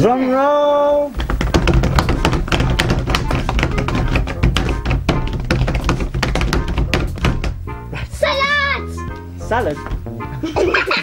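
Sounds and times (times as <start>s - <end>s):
hands drumming on a wooden table: 1.2s - 7.8s.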